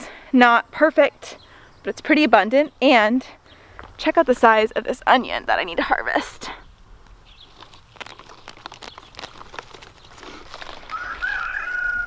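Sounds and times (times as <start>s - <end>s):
rustling of mulch and leaves: 3.5s - 12.0s
rooster crowing: 10.9s - 12.0s.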